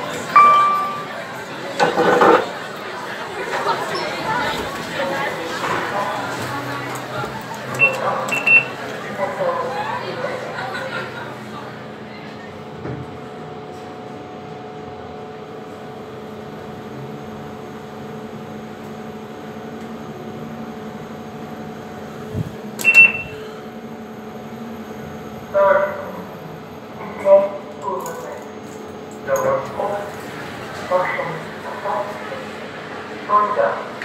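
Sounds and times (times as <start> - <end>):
lift car humming: 0.0 - 11.8
short high beep: 0.3 - 1.1, 7.8 - 8.8, 22.8 - 23.5.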